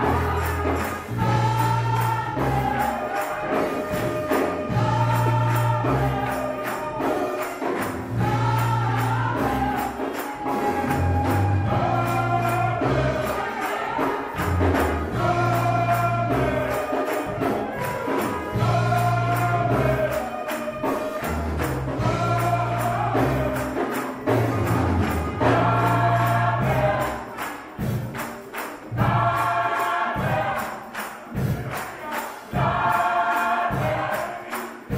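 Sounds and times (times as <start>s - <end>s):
bass notes: 0.0s - 3.0s, 8.0s - 9.9s, 21.4s - 27.1s
gospel choir singing: 0.0s - 34.9s
percussion beat: 0.0s - 34.9s.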